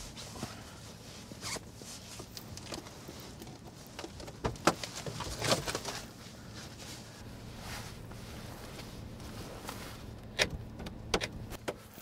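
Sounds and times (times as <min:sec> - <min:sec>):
steady low hum: 0:05.2 - 0:12.0.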